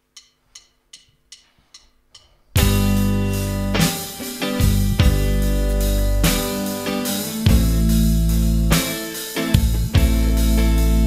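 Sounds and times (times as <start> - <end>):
drum stick count-in ticks: 0.0 - 2.8
rock band playing loudly: 2.6 - 11.0.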